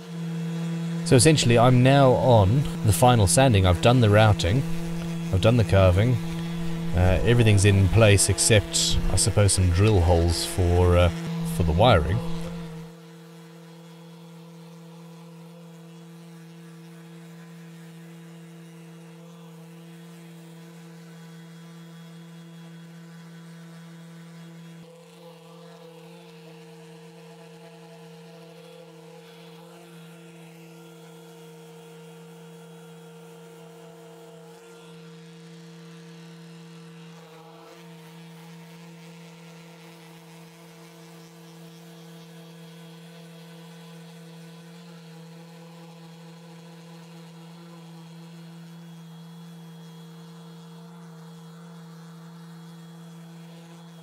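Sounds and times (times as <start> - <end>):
orbital sander motor hum: 0.0 - 54.0.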